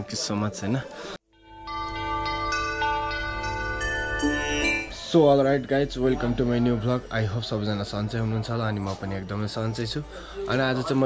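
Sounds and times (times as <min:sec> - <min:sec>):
music with ringing held notes: 0:01.3 - 0:05.6.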